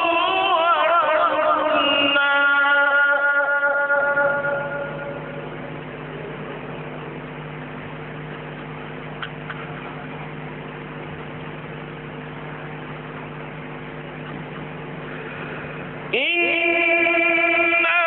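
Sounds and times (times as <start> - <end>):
low tone hum: 0.0 - 18.0.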